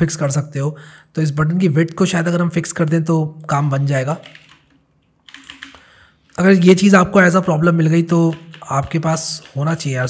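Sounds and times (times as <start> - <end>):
keyboard typing: 3.5 - 10.0.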